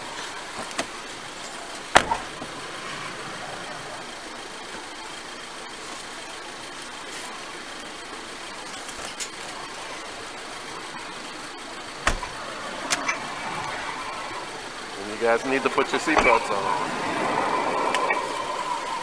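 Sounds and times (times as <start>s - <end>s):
car engine idling: 0.0s - 19.0s
street noise: 0.0s - 19.0s.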